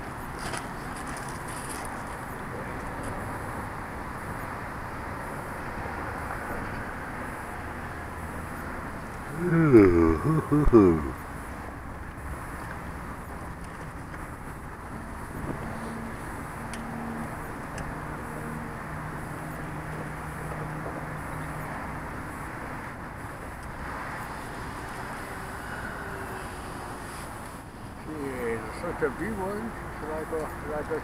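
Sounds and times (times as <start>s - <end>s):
background noise: 0.0s - 31.0s
model plane propeller drone: 24.2s - 27.6s.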